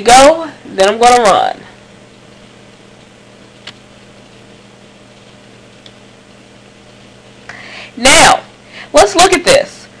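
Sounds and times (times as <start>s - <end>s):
low electrical hum and hiss: 0.0s - 10.0s.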